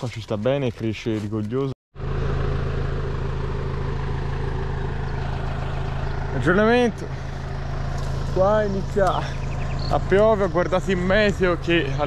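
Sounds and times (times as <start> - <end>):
tractor diesel engine idling: 2.0 - 12.0.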